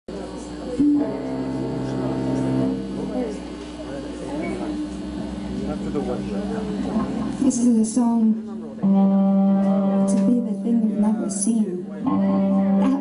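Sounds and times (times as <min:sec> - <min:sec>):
voices murmuring: 0:00.1 - 0:13.0
cello bowed note: 0:00.8 - 0:03.4, 0:04.4 - 0:13.0.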